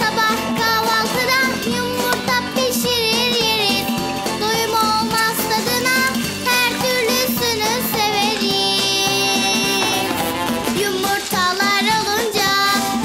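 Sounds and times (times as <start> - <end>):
child singing: 0.0 - 13.0
light instrumental backing: 0.0 - 13.0.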